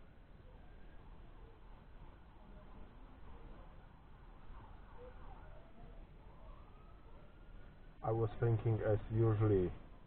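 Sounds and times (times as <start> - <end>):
faint siren wailing: 0.0 - 10.0.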